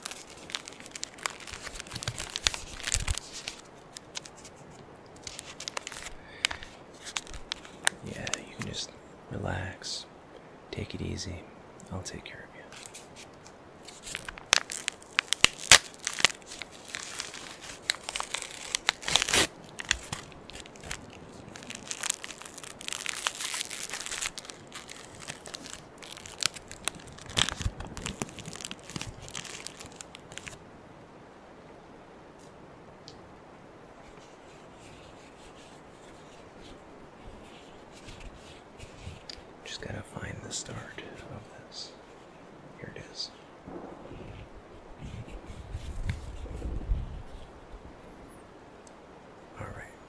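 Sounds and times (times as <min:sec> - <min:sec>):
wrapper tearing and crinkling: 0:00.0 - 0:04.6, 0:05.2 - 0:08.5, 0:12.7 - 0:30.6
soft handling of gauze: 0:00.0 - 0:08.8, 0:12.7 - 0:30.6, 0:33.9 - 0:39.7.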